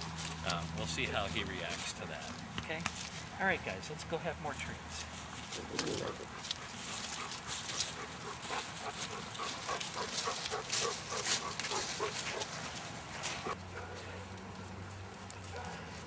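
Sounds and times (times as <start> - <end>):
rustling on grass: 0.0 - 16.0
dogs sniffing: 5.0 - 14.3.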